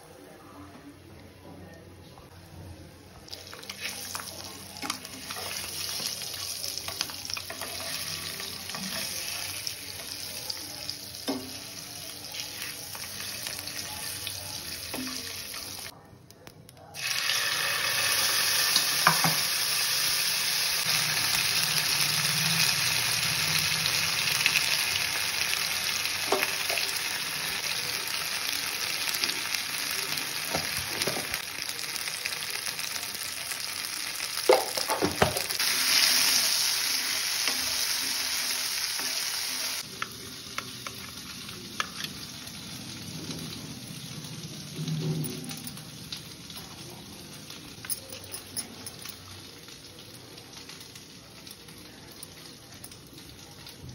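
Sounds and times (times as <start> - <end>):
sizzling in hot oil: 3.3 - 15.9, 17.0 - 48.0.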